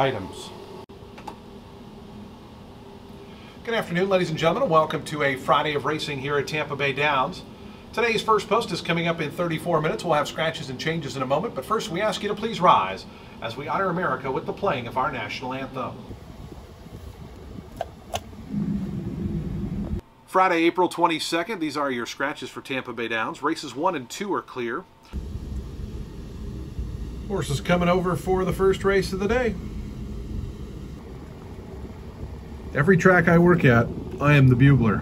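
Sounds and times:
low hum: 13.2s - 20.1s, 25.0s - 35.0s
steady low rumble: 13.6s - 20.1s, 25.1s - 35.0s.

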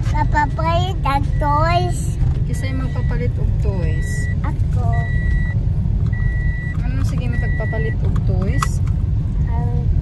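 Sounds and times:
low rumble inside car: 0.0s - 10.0s
high electronic warning beep: 0.1s - 8.0s.

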